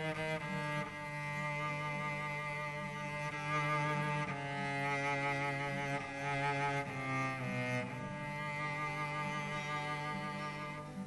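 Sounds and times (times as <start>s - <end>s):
instrumental music with held notes: 0.0s - 11.0s.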